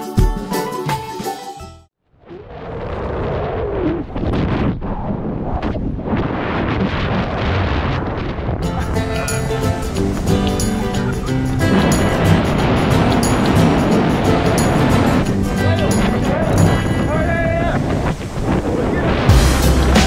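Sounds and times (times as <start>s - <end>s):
background music: 0.0s - 1.9s, 8.7s - 17.3s, 19.3s - 20.0s
wind rushing over microphone: 2.2s - 19.4s.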